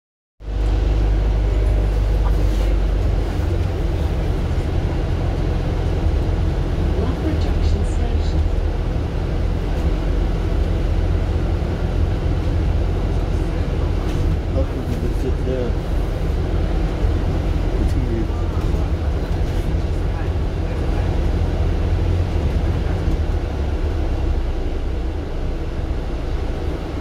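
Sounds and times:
bus engine rumble: 0:00.4 - 0:27.0.

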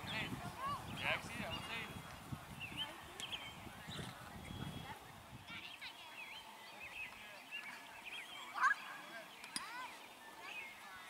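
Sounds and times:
distant voices chattering: 0:00.0 - 0:11.0.

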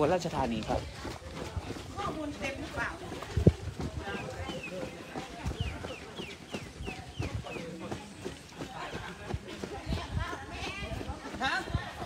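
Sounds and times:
running footsteps on pavement: 0:00.0 - 0:12.0
bird chirping: 0:04.1 - 0:08.3.

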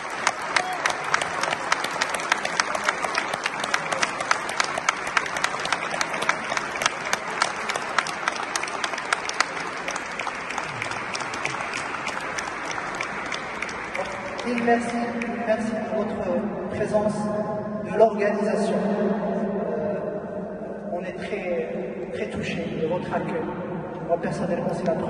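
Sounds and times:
sharp claps close by: 0:00.0 - 0:15.3
audience applauding: 0:00.0 - 0:15.4.

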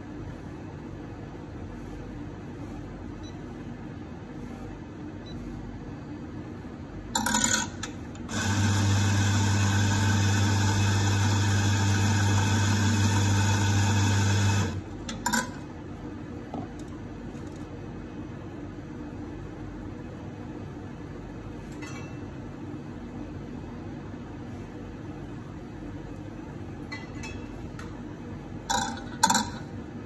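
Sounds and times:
coffee grinder motor humming: 0:08.2 - 0:14.9.

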